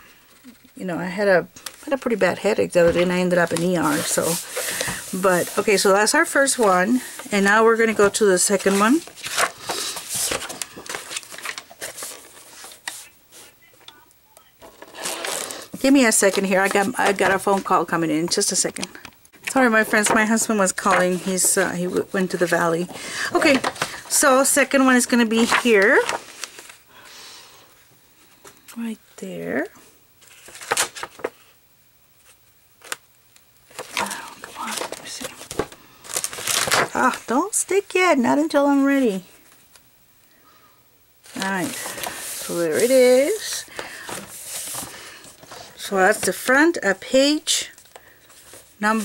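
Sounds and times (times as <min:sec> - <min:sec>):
paper rustling and scraping: 0:01.7 - 0:13.6, 0:14.6 - 0:18.7, 0:19.7 - 0:26.8, 0:30.2 - 0:31.6, 0:33.7 - 0:37.5, 0:41.2 - 0:46.6, 0:47.8 - 0:49.0.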